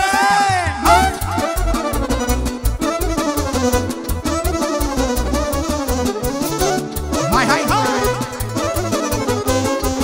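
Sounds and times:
electronic keyboard: 0:00.9 - 0:10.0
violin melody: 0:01.4 - 0:10.0.

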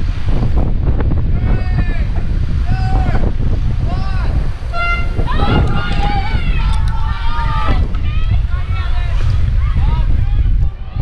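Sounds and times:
wind buffeting microphone: 0:00.0 - 0:11.0
voices calling out: 0:01.3 - 0:11.0.

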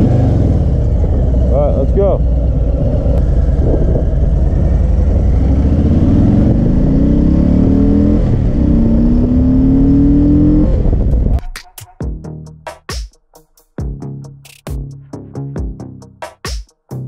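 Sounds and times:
motorcycle engine accelerating: 0:00.0 - 0:11.4
electronic music with drum beat: 0:11.2 - 0:17.0.

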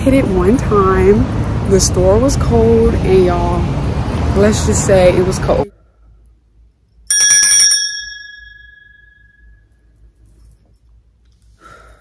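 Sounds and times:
brass hand bell ringing: 0:07.1 - 0:09.7.

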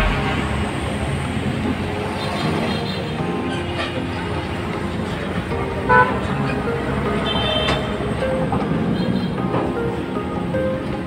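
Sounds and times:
background music: 0:00.0 - 0:11.0
road traffic noise: 0:00.0 - 0:11.0
vehicle horn toot: 0:05.9 - 0:06.2, 0:07.2 - 0:08.0.

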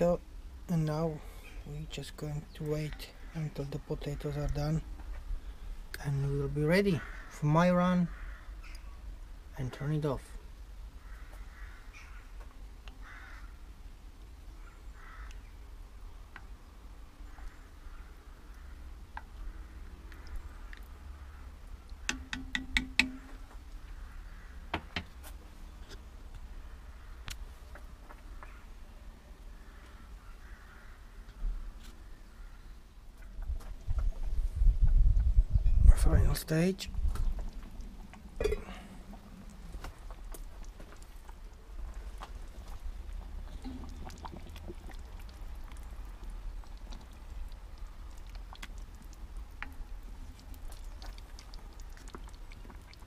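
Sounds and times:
faint bird calls: 0:06.9 - 0:07.4, 0:08.0 - 0:09.1, 0:11.0 - 0:13.7, 0:14.5 - 0:15.6, 0:17.2 - 0:24.8, 0:28.2 - 0:33.4
heavy knocking of cast iron: 0:22.1 - 0:23.4.

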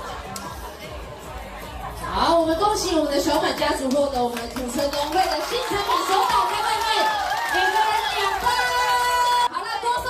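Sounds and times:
murmur of crowd voices: 0:00.0 - 0:10.0.

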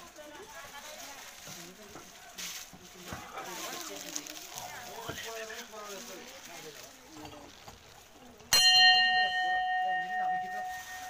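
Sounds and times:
metal temple bell ringing: 0:08.5 - 0:11.0.

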